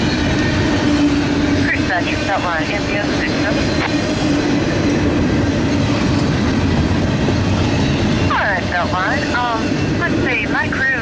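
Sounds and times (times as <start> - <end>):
freight train rolling past: 0.0 - 11.0.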